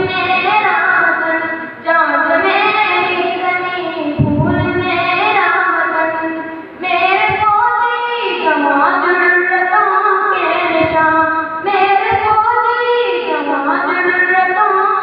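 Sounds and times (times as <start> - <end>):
boy singing into a microphone: 0.0 - 15.0.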